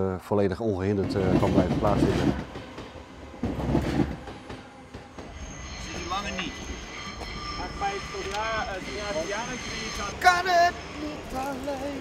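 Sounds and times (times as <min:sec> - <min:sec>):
train running on track: 0:00.6 - 0:12.0
high-pitched wheel squeal: 0:05.3 - 0:12.0.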